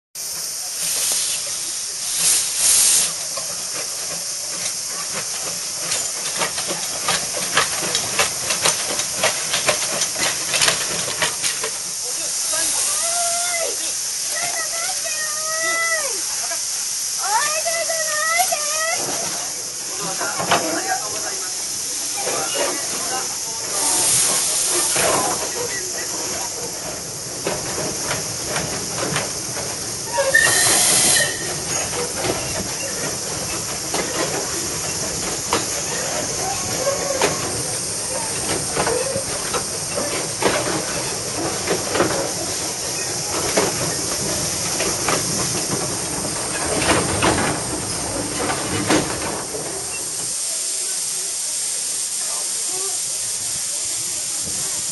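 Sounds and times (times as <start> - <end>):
metallic clicks of train wheels: 0.2 - 54.9
steam hissing: 0.2 - 54.9.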